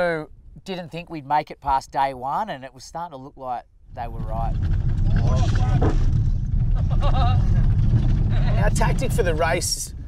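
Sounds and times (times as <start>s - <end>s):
engine and road rumble: 1.6s - 10.0s.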